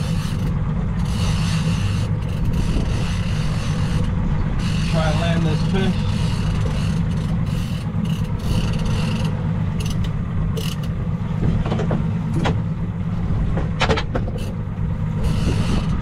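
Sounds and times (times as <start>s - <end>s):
outboard motor idling: 0.0s - 16.0s
water: 0.0s - 16.0s
wind: 0.0s - 16.0s
sharp clicks and knocks: 6.2s - 12.6s, 13.5s - 14.6s.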